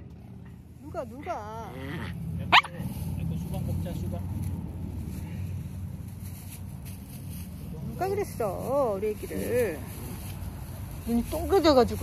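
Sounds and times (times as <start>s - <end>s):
dog barking: 2.5s - 2.8s.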